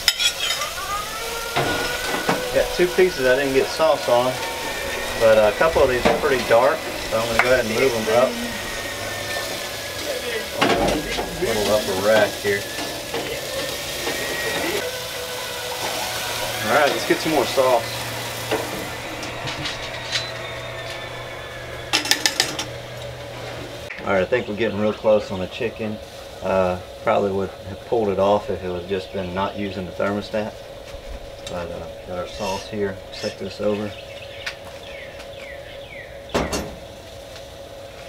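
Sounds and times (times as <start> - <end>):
chicken sizzling on grill grates: 0.0 - 34.0
low steady hum: 0.0 - 38.0.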